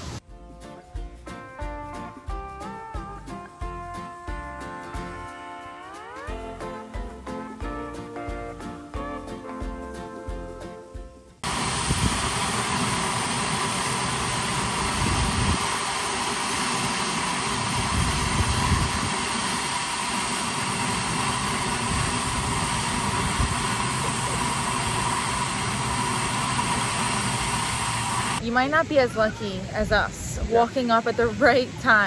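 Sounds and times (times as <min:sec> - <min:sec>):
geyser water jet hissing: 0:11.4 - 0:32.0.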